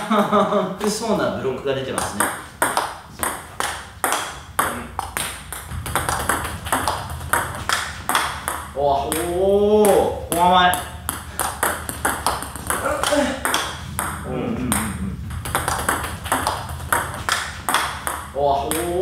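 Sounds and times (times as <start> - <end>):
table tennis ball clicking: 1.9 - 19.0.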